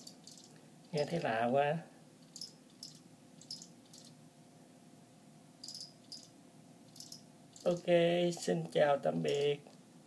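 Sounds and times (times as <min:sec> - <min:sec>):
cricket chirping: 0:00.0 - 0:00.6, 0:02.4 - 0:04.2, 0:05.6 - 0:07.8.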